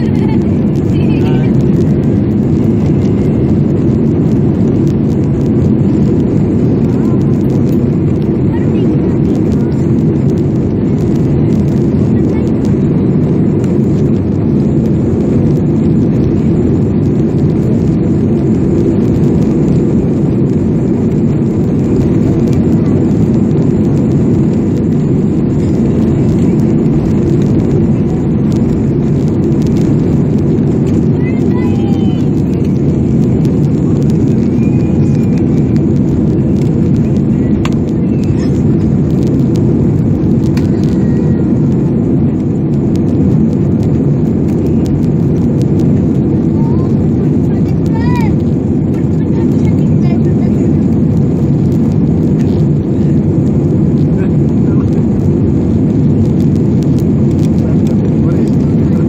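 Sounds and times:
jet engines at takeoff thrust: 0:00.0 - 0:59.0.

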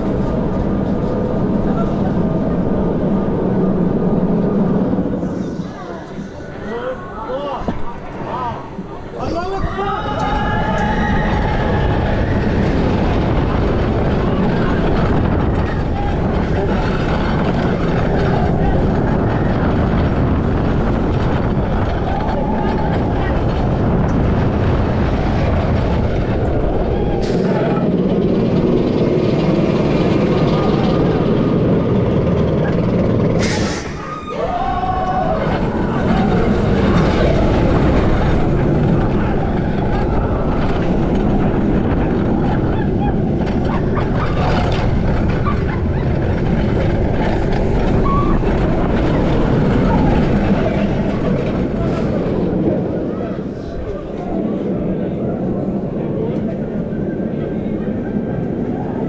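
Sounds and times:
roller coaster wind and train rush: 0:00.0 - 0:59.0.

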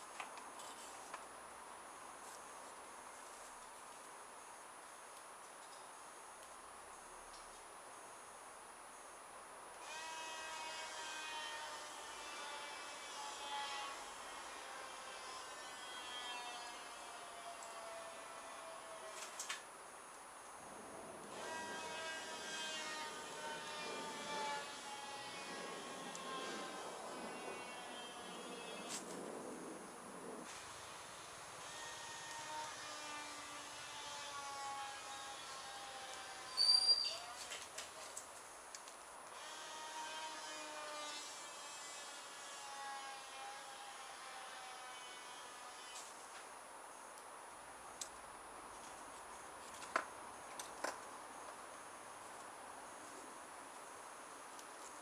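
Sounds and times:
electric motor whine: 0:21.3 - 0:29.0.

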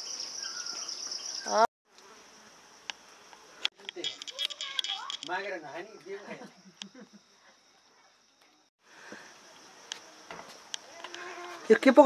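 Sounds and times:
insects chirring: 0:00.0 - 0:12.0.

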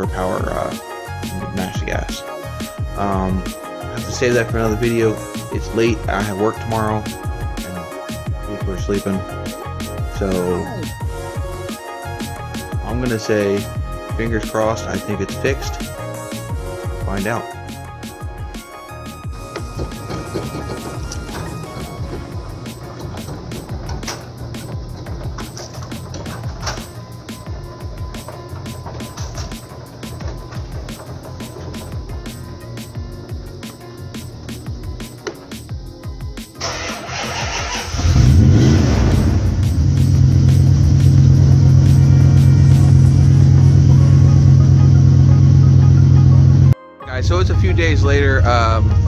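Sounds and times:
background music with a beat: 0:00.0 - 0:36.6, 0:38.2 - 0:49.0
pickup engine cranking and idling: 0:19.3 - 0:31.7, 0:36.6 - 0:46.6.

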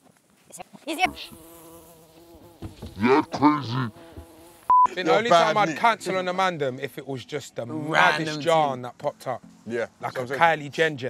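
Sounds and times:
flying insect buzzing: 0:01.0 - 0:04.7.

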